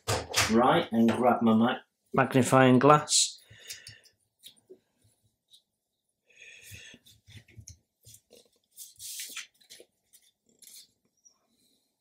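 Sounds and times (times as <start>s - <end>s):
paper rustling: 8.0s - 11.0s.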